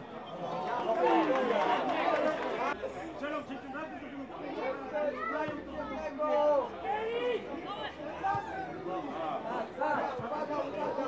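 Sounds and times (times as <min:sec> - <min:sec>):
people calling out and talking: 0:00.0 - 0:11.0.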